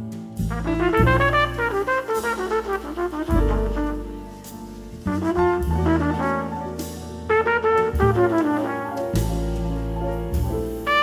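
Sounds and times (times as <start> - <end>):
double bass low notes: 0.0 - 11.0
drums: 0.0 - 11.0
piano: 0.0 - 11.0
trumpet jazz solo: 0.4 - 11.0.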